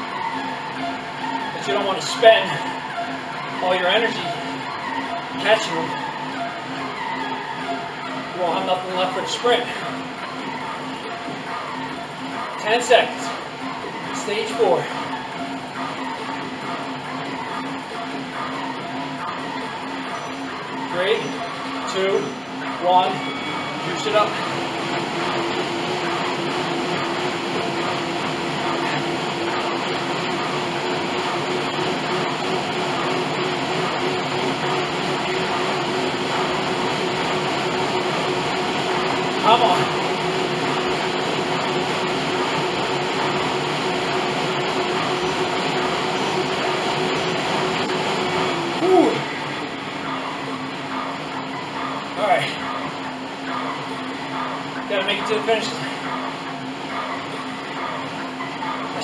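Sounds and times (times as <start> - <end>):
fan whining: 0.0 - 59.0.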